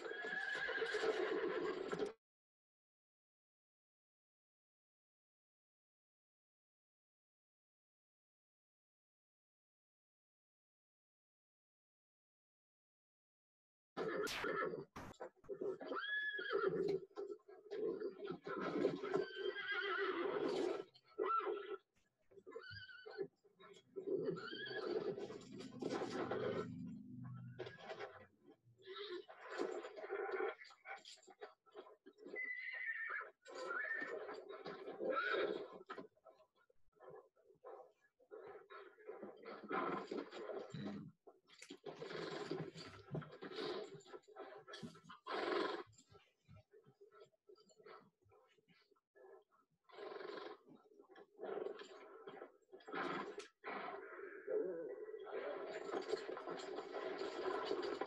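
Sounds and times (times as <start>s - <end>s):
horses whinnying: 0.0s - 2.1s, 14.0s - 27.0s, 28.8s - 30.8s, 32.2s - 36.0s, 52.8s - 53.8s
horse sounds and movement: 0.0s - 2.2s, 14.0s - 54.3s, 55.1s - 58.0s.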